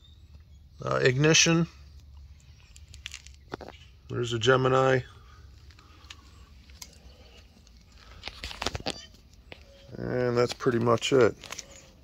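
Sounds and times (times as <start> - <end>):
camera handling noise: 5.7 - 9.6.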